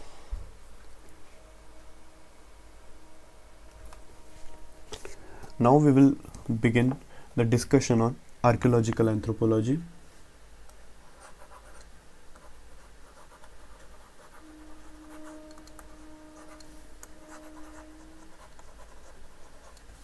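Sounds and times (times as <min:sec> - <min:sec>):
faint steady hum: 0:00.0 - 0:20.0
stylus scratching on tablet: 0:11.0 - 0:20.0.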